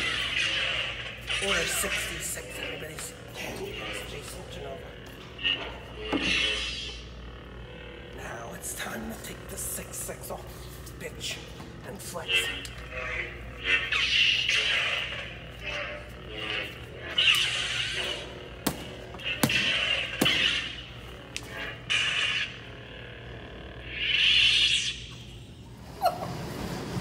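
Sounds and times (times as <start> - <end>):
low hum: 0.0 - 27.0.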